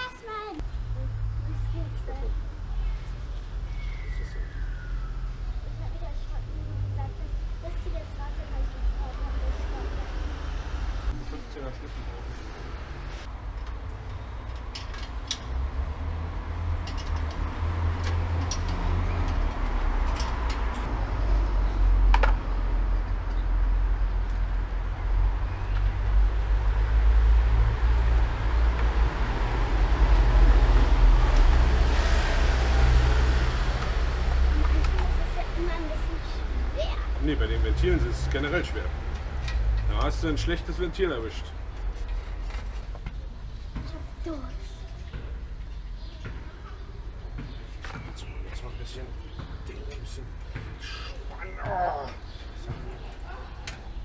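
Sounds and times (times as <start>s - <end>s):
traffic rumble: 0.0s - 54.0s.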